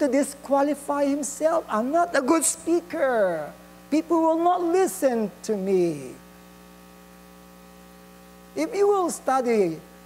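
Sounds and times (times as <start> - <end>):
electrical mains hum: 0.0 - 10.0
man speaking: 0.6 - 6.2, 8.6 - 9.8.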